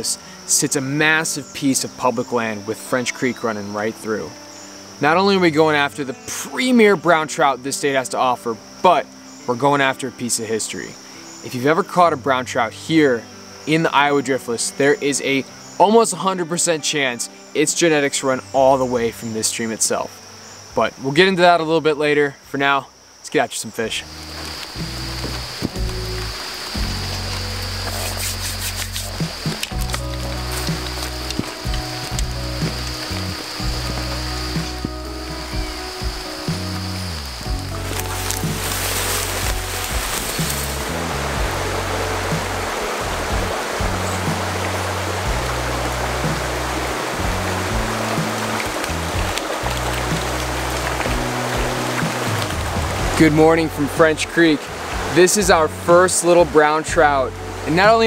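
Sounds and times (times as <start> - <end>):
insect trill: 0.0 - 58.0
running water hiss: 0.0 - 58.0
background music with bass line: 24.0 - 58.0.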